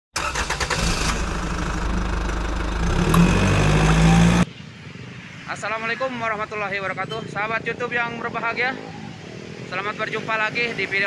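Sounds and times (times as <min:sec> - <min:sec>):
loud vehicle engine running: 0:00.8 - 0:04.5.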